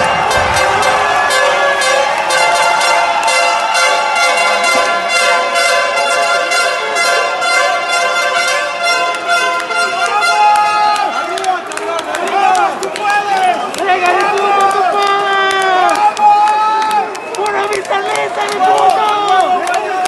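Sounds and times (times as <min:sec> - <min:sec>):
crowd shouting: 0:00.0 - 0:20.0.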